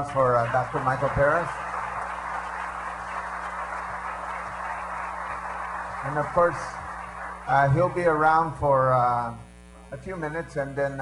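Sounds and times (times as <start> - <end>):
audience applauding: 0.0 - 8.5
low steady hum: 0.0 - 11.0.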